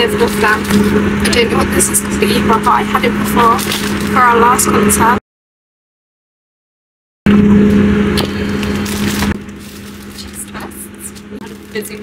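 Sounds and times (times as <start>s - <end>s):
train carriage rumble: 0.0s - 5.2s, 7.6s - 12.0s.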